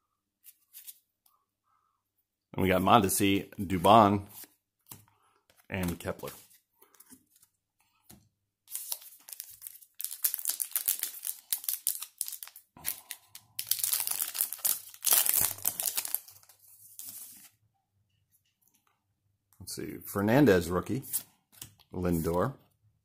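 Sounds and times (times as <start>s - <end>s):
wrapper tearing and crinkling: 8.7s - 17.5s.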